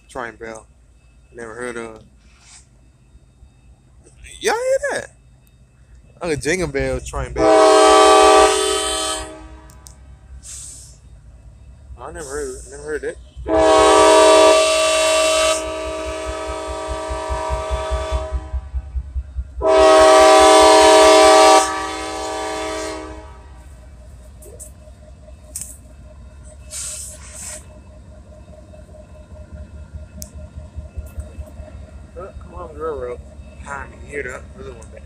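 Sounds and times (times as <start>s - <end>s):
low rumble of train: 0.0s - 35.0s
locomotive air horn blasts: 7.4s - 11.0s, 13.4s - 18.9s, 19.6s - 23.8s.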